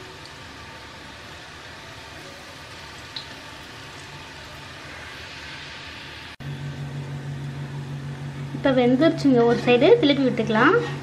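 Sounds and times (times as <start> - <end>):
peanuts sizzling in hot oil: 0.0 - 6.4
steady low hum: 2.8 - 11.0.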